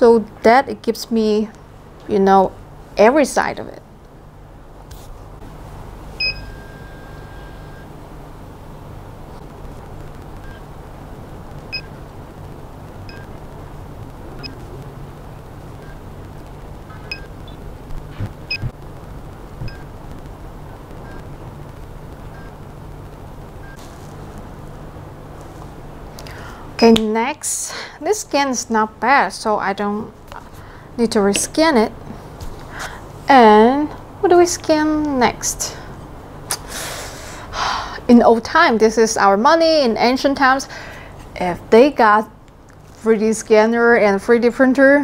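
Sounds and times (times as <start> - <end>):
scanner and turntable humming: 0.0 - 36.5.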